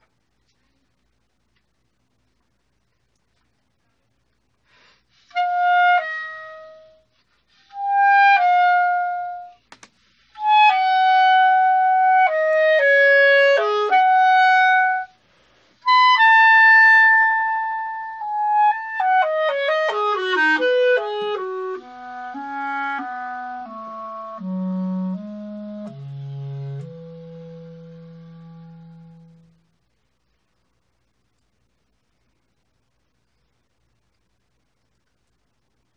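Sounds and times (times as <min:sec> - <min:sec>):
solo clarinet: 0:05.2 - 0:09.6, 0:10.3 - 0:15.2, 0:15.8 - 0:29.8.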